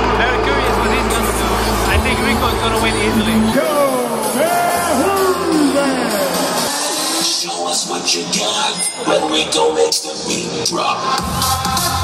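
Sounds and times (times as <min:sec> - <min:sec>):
music over sound system: 0:00.0 - 0:12.0
gliding amplified voice: 0:01.8 - 0:11.2.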